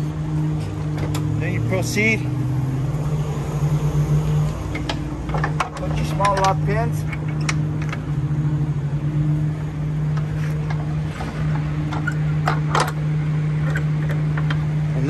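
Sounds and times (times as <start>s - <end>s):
diesel truck engine idling: 0.0s - 15.0s.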